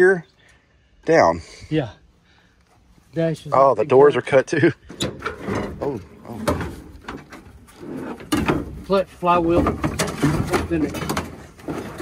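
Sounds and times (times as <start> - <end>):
knocks and clunks of truck parts: 4.8 - 12.0.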